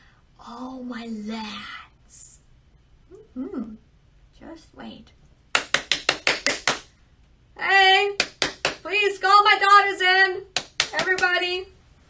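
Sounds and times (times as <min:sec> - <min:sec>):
rapid hand claps: 0:05.5 - 0:06.9, 0:08.2 - 0:08.9, 0:10.5 - 0:11.4.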